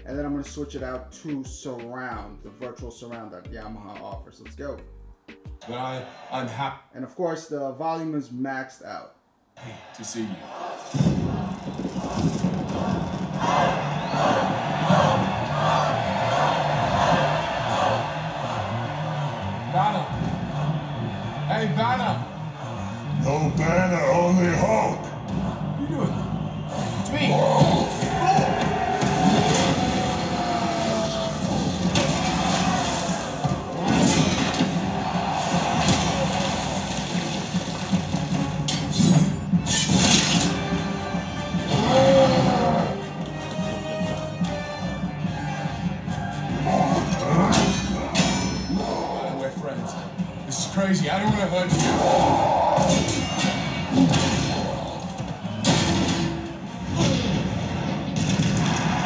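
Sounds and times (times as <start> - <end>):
loud film soundtrack: 0.0 - 6.8, 9.6 - 59.0.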